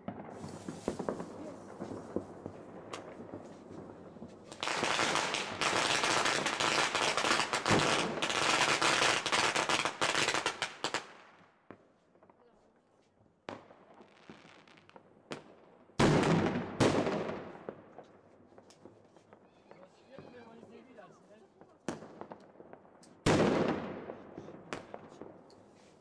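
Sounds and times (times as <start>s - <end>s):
fireworks and firecrackers crackling: 0.0s - 26.0s.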